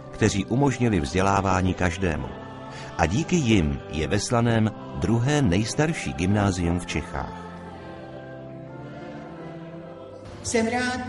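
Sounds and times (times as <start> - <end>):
choir singing long notes: 0.0 - 11.0.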